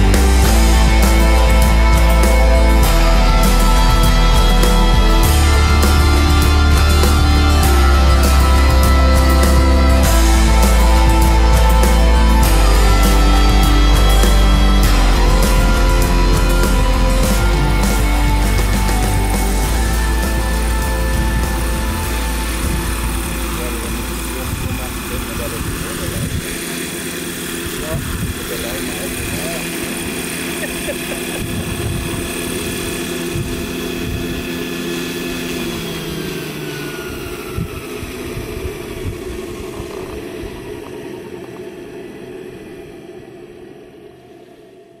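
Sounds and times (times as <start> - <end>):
model helicopter rotor whine: 0.0 - 45.0.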